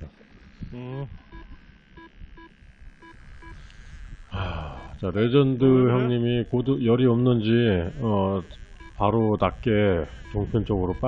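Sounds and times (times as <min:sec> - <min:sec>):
electronic variometer beeps: 0:01.3 - 0:05.2, 0:05.9 - 0:11.0.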